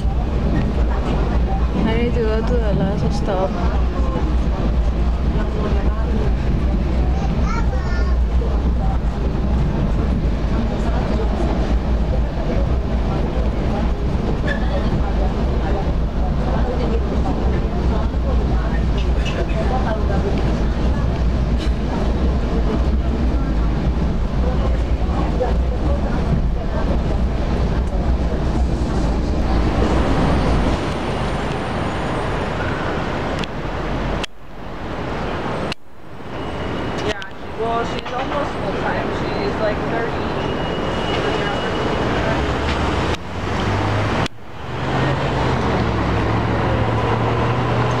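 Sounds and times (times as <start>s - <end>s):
train carriage rumbling on tracks: 0.0s - 48.0s.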